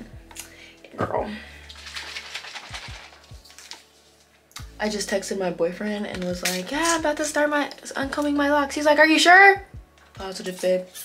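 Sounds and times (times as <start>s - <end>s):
hair crackling and rustling: 1.6s - 4.7s.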